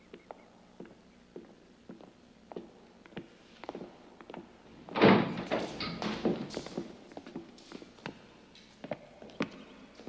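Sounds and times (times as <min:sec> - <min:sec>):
footsteps on tiled floor: 0:00.1 - 0:04.6.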